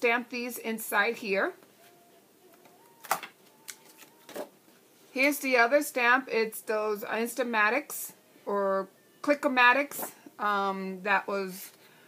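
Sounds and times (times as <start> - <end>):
plastic sheets rustling: 1.8 - 5.2.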